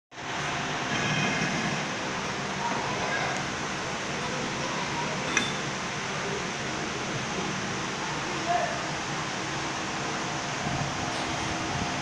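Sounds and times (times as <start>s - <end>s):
machinery running: 9.1s - 12.0s.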